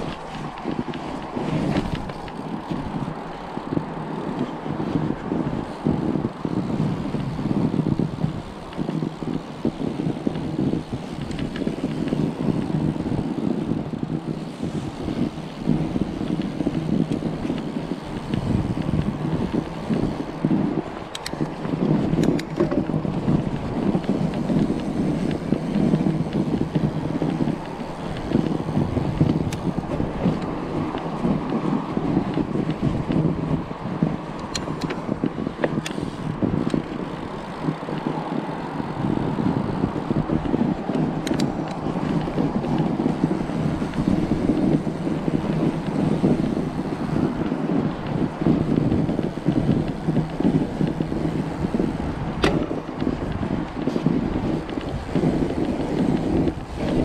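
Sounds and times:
tyres rolling on packed snow: 0.0s - 57.0s
wind buffeting microphone: 0.0s - 57.0s
faint clicks: 11.1s - 12.2s, 21.1s - 31.7s, 39.8s - 51.5s.

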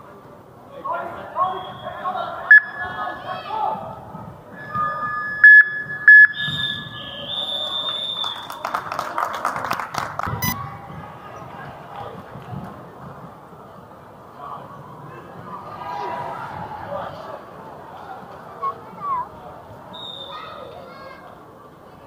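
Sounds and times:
players and spectators voices: 0.0s - 22.0s.

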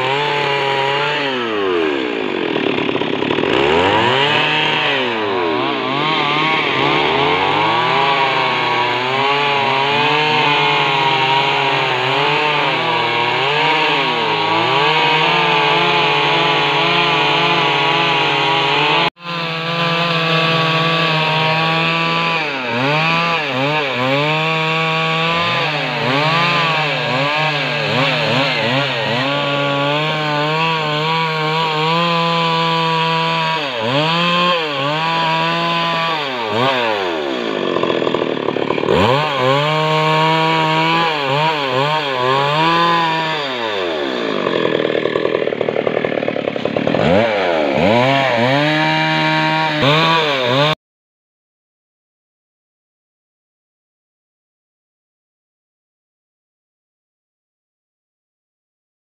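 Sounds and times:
chainsaw cutting a log: 0.0s - 50.8s.

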